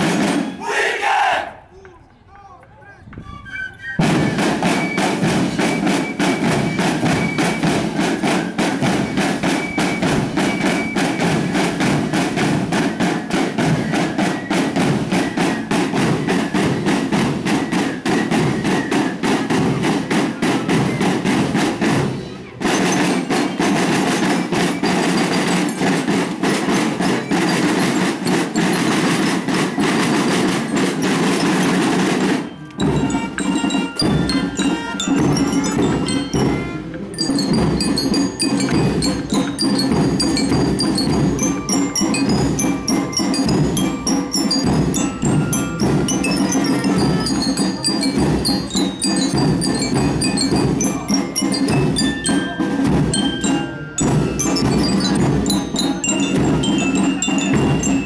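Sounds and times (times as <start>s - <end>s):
mallet bells melody: 0.0s - 0.6s, 3.9s - 58.0s
fast marching drumming: 0.0s - 2.8s, 4.0s - 58.0s.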